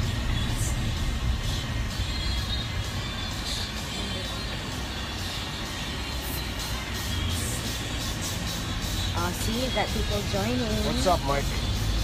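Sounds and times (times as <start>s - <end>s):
road noise inside cabin: 0.0s - 12.0s
vehicle engine rumble: 0.0s - 12.0s.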